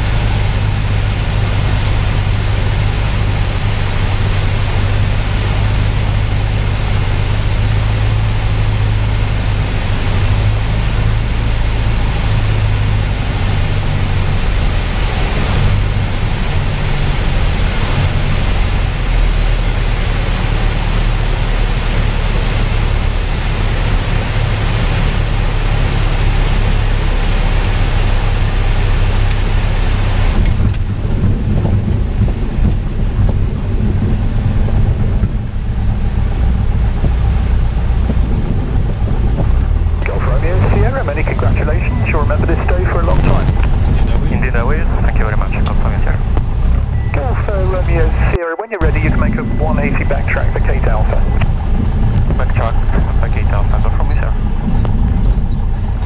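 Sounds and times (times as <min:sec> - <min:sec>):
aircraft engine drone: 0:00.0 - 0:56.0
radio voice: 0:40.0 - 0:46.2, 0:47.1 - 0:51.6, 0:52.3 - 0:54.4.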